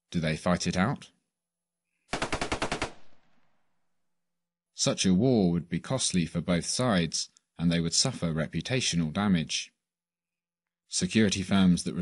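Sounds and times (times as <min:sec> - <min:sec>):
rapid gunfire: 0:02.1 - 0:03.6
gunfire echo: 0:02.1 - 0:03.7.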